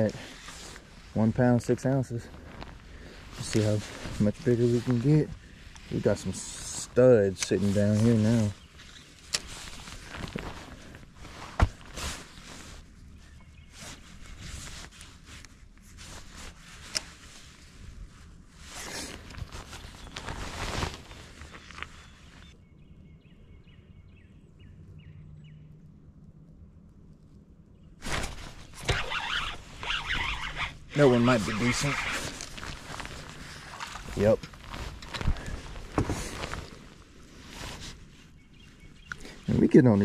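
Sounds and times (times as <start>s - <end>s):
faint low hum: 0.0s - 39.9s
loud rustling: 28.0s - 38.2s.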